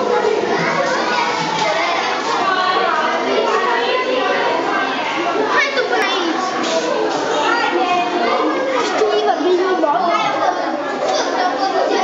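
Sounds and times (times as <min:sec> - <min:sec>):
crowd chattering with children: 0:00.0 - 0:12.0.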